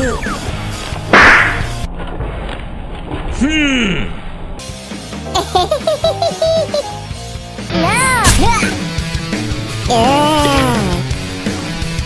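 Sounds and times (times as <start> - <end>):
low background music: 4.4 - 12.0.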